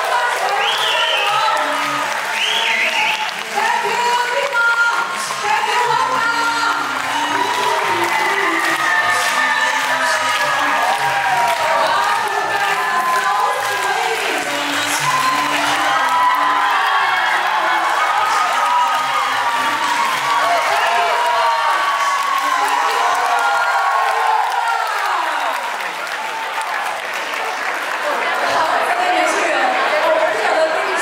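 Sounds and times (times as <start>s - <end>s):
music: 0.0s - 24.6s
audience applauding: 0.0s - 31.0s
crowd shouting and cheering: 0.0s - 31.0s.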